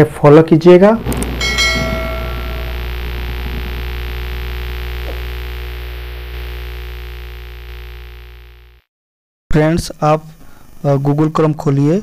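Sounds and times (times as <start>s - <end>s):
deep humming drone: 1.0s - 8.8s
bright bell-like ringing hit: 1.4s - 2.8s.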